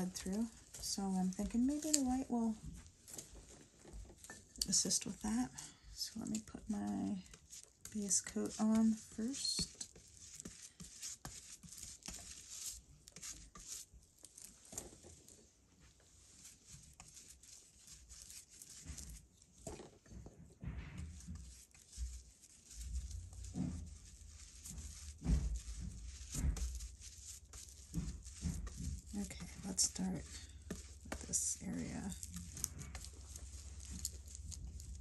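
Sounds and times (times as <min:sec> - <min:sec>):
paintbrush swishing on paper: 0:00.0 - 0:19.7, 0:20.6 - 0:35.0
soft bumps: 0:18.7 - 0:35.0.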